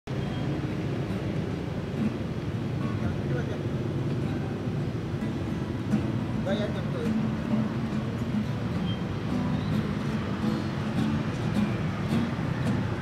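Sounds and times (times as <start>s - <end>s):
road traffic rumble: 0.1s - 13.0s
people talking: 2.8s - 3.7s, 6.4s - 7.2s.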